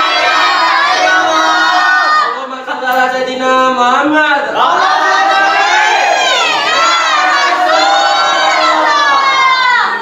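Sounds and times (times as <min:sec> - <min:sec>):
men and boys chanting in unison: 0:00.0 - 0:09.9.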